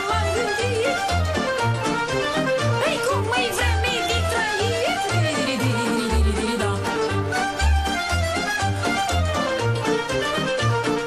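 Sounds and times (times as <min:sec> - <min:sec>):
folk dance band melody: 0:00.0 - 0:11.0.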